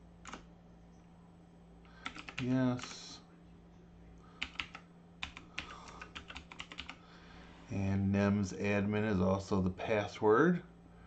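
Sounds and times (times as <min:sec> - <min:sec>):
computer keyboard keystrokes: 0:00.2 - 0:00.5, 0:02.0 - 0:02.5, 0:04.4 - 0:07.0.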